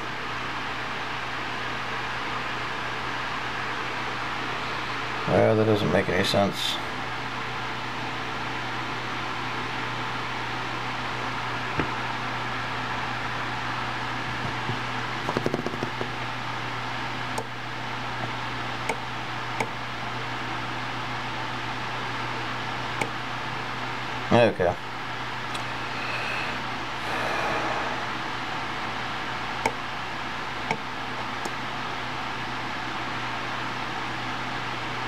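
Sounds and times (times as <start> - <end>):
steady background hum: 0.0 - 35.0.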